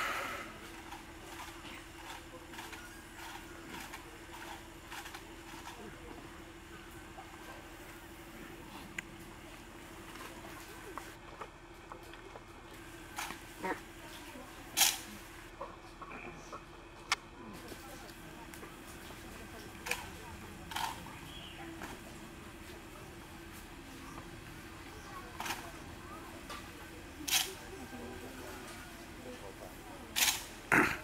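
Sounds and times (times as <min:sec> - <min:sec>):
faint steady hum: 0:00.0 - 0:31.0
murmur of background voices: 0:00.0 - 0:31.0.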